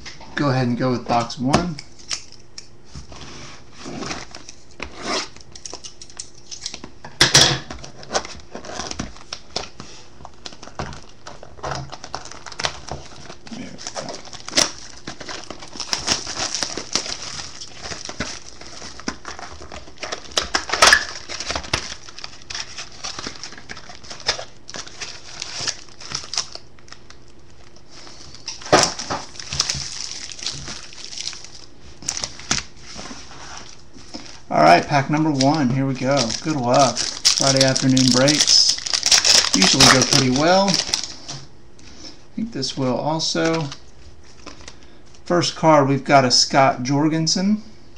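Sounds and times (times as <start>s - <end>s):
plastic wrapping crinkling and tearing: 4.0s - 6.9s, 7.8s - 41.5s.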